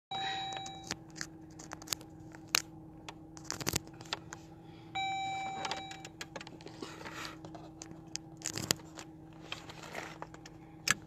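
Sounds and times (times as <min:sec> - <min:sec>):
short electronic tones: 0:00.1 - 0:00.9
low hum: 0:00.1 - 0:11.0.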